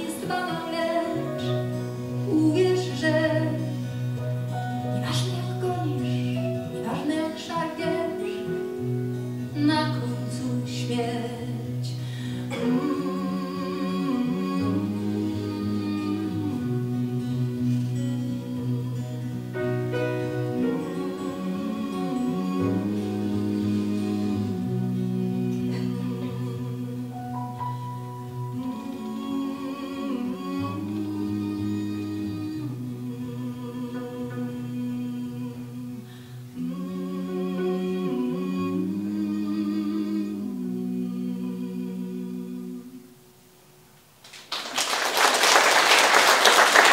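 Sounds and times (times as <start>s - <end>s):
double bass: 0.0s - 43.1s
woman singing wordless notes: 0.0s - 43.4s
acoustic guitar: 0.0s - 44.6s.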